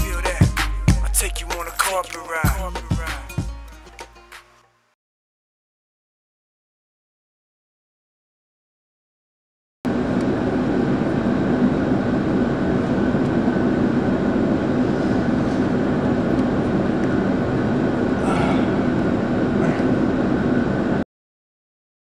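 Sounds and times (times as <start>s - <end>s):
jet airliner cabin rumble: 9.9s - 21.0s.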